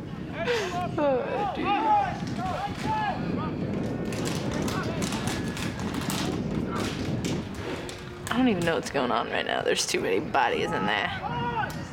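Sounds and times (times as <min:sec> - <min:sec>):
players shouting: 0:01.4 - 0:03.6.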